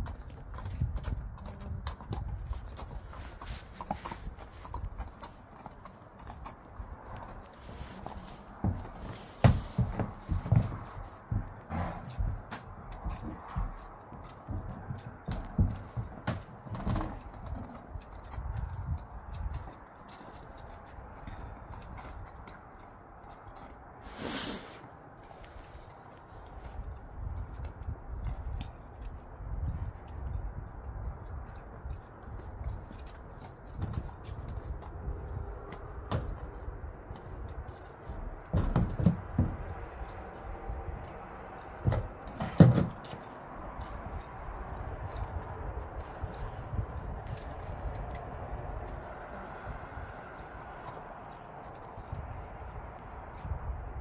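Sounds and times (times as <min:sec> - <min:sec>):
hooves thudding on ramp: 0:00.0 - 0:24.2, 0:25.2 - 0:54.0
hooves stepping on snow: 0:00.0 - 0:54.0.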